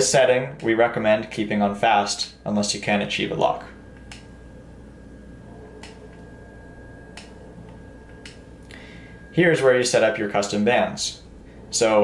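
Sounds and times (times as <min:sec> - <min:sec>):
faint steady high tone: 0:00.0 - 0:12.0
low room noise: 0:00.0 - 0:12.0.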